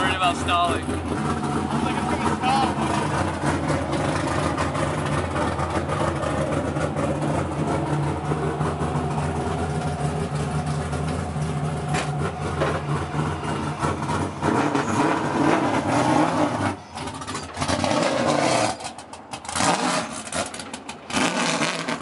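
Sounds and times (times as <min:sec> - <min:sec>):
car engine idling: 0:00.0 - 0:22.0.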